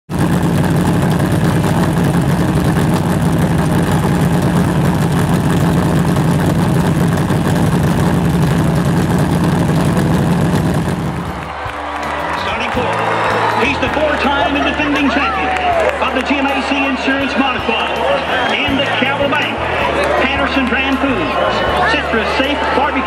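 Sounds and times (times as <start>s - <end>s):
race car engine running loudly: 0.1s - 23.0s.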